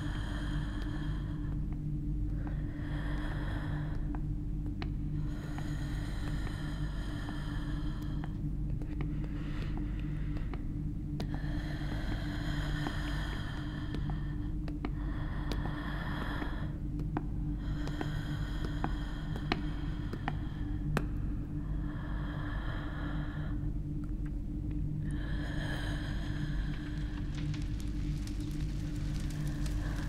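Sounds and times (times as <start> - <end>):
close-up breathing: 0.0 - 30.0
steady low hum: 0.0 - 30.0.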